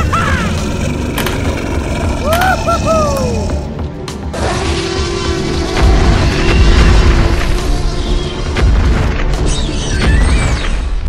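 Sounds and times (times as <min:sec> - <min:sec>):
rising and falling vocal cries: 0:01.9 - 0:03.8.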